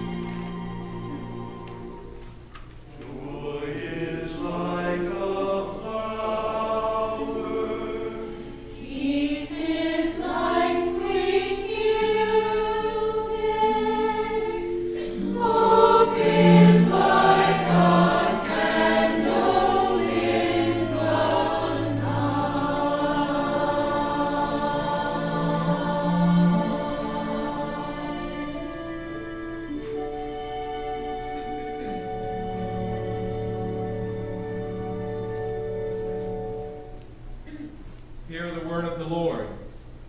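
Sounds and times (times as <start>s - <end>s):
mixed choir singing in harmony: 0.0s - 2.3s, 2.9s - 37.0s.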